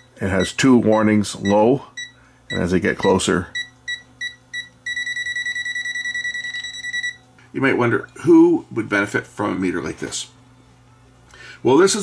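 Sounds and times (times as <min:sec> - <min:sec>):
voltage detector beeping rapidly: 0:00.0 - 0:07.2.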